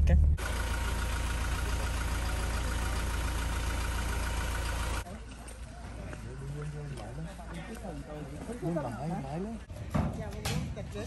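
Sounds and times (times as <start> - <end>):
vehicle engine and road noise: 0.0 - 9.7
outdoor background: 0.0 - 11.0.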